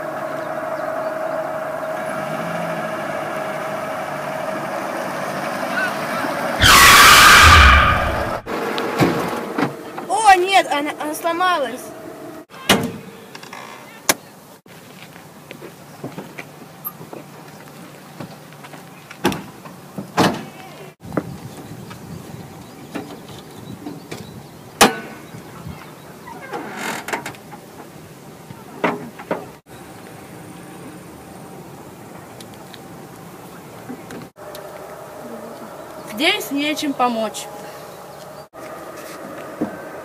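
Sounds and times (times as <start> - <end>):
hood scraping: 6.6 - 8.7.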